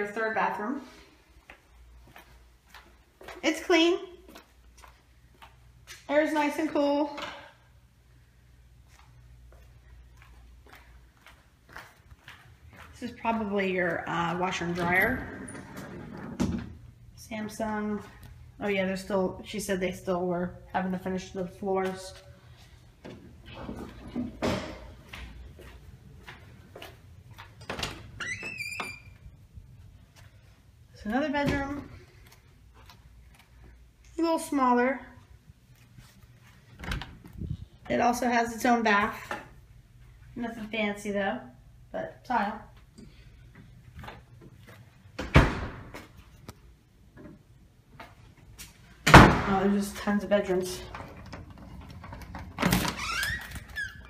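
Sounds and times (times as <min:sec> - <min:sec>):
door hinge squeaking: 0:28.2 - 0:29.2, 0:52.6 - 0:54.0.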